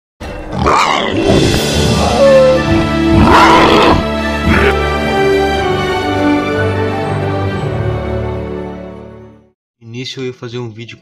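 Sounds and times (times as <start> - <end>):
dramatic music: 0.2 - 9.5
creature roaring: 0.5 - 4.9.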